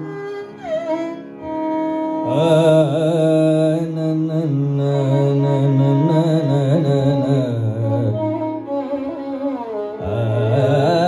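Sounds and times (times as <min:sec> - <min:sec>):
violin: 0:00.0 - 0:11.0.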